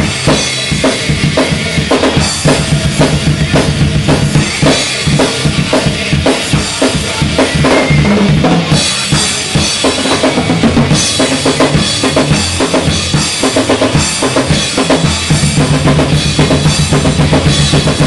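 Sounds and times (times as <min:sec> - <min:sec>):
rock backing track: 0:00.0 - 0:18.0
rock drum kit played fast: 0:00.0 - 0:18.0.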